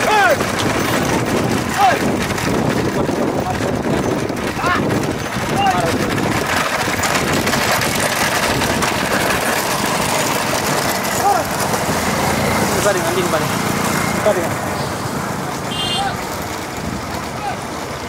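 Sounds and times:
men shouting: 0.0s - 0.6s, 1.3s - 2.3s, 4.5s - 6.1s, 11.1s - 11.6s
motorcycle engines running: 0.0s - 18.0s.

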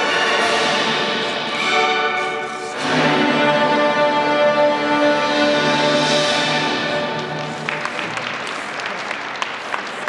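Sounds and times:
audience applause: 7.0s - 10.0s.

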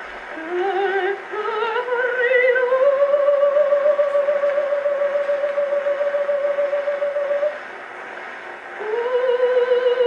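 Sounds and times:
record surface hiss: 0.0s - 10.0s
operatic soprano singing: 0.3s - 7.6s, 8.7s - 10.0s.

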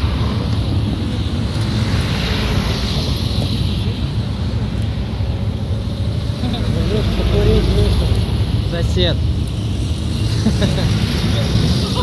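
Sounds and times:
cars driving past: 0.0s - 12.0s.

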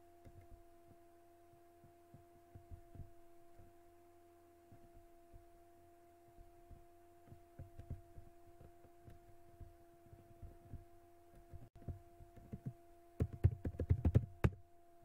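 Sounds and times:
steady low hum: 0.0s - 13.4s
soft low thumps: 1.8s - 3.8s.

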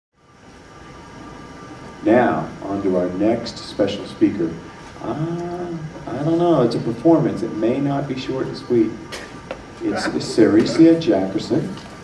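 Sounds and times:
faint hum: 0.2s - 12.0s.

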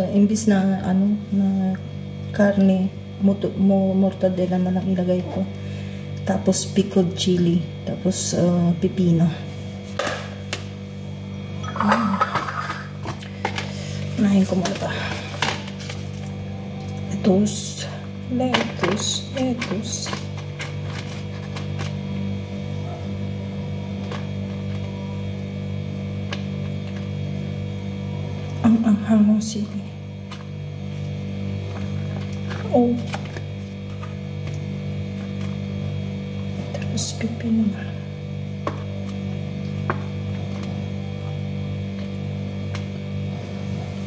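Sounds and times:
steady low hum: 0.0s - 44.0s.

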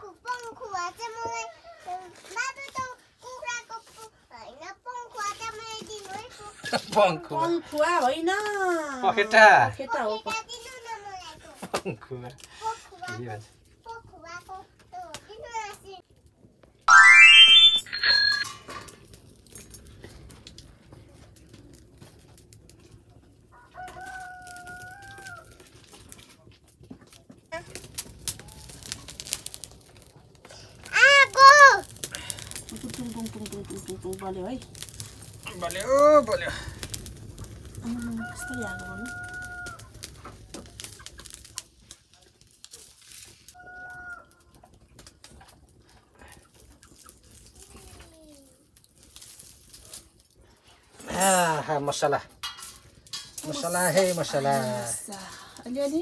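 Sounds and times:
open fire crackling: 0.0s - 17.4s, 18.2s - 56.0s
high-pitched call: 16.9s - 18.5s.

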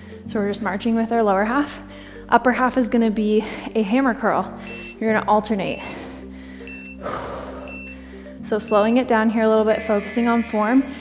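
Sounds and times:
background music with low notes: 0.0s - 11.0s
short high timer beep: 4.6s - 5.0s, 6.7s - 7.0s, 7.7s - 8.0s.

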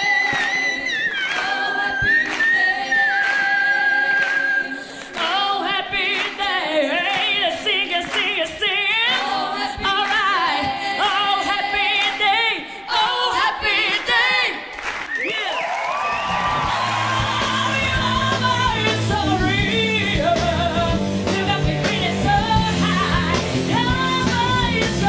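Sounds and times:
women singing in harmony: 0.0s - 14.7s, 17.0s - 25.0s.

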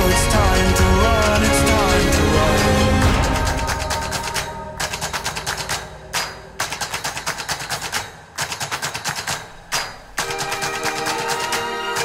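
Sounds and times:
clattering percussive strikes: 0.0s - 12.0s.

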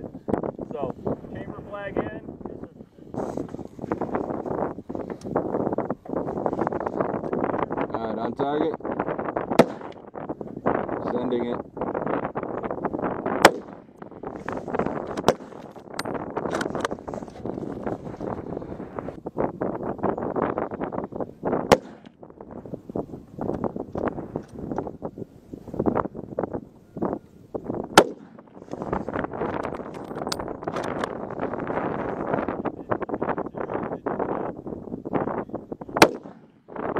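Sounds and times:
wind buffeting microphone: 0.0s - 36.9s
rifle shots: 9.5s - 10.1s, 13.4s - 13.9s, 21.7s - 22.2s, 28.0s - 28.6s, 36.0s - 36.5s.

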